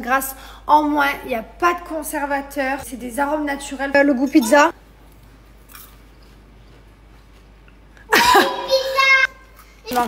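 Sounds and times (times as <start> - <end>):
man chewing popcorn: 4.9 - 8.1.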